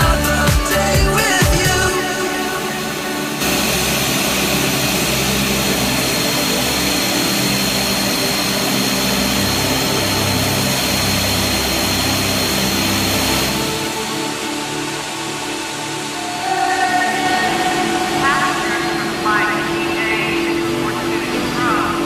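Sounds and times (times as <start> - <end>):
turboprop engines roaring: 0.0 - 22.0.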